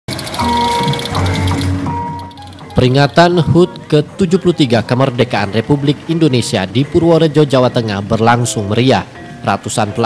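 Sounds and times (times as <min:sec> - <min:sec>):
fast even rattling: 0:00.1 - 0:03.3
held notes: 0:00.1 - 0:10.0.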